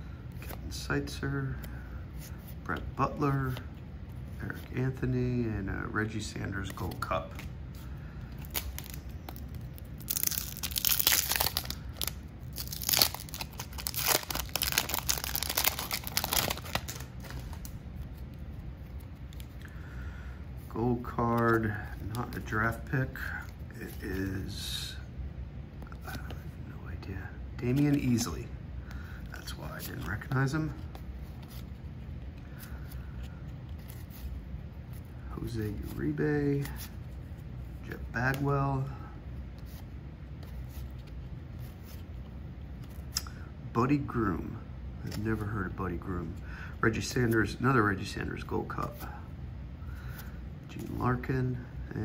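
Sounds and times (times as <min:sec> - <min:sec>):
paper wrapper tearing and crinkling: 0:08.4 - 0:17.8.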